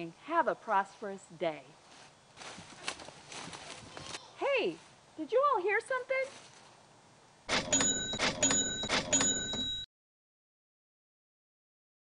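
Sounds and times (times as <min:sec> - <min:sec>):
cash register clanks and bell: 0:07.5 - 0:09.9.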